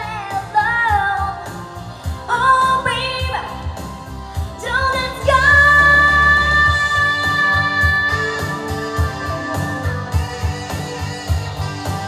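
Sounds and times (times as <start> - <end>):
girl singing into microphone: 0.0 - 3.6, 4.6 - 9.7
pop backing track with beat: 0.0 - 12.0.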